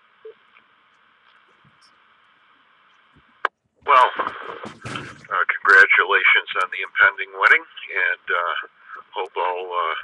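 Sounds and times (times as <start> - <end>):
faint radio hiss: 0.0 - 10.0.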